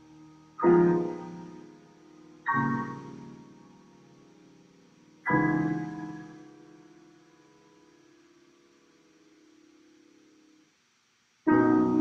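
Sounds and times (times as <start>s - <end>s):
piano chords ringing: 0.0s - 10.6s, 11.5s - 12.0s.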